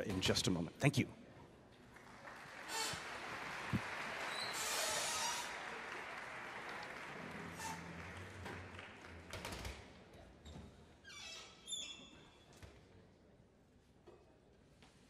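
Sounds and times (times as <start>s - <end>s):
audience applauding: 1.9s - 9.7s.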